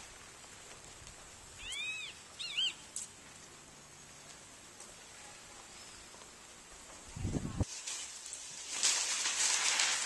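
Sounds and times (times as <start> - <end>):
faint steady hiss: 0.0 - 10.0
high animal calls: 1.6 - 2.8.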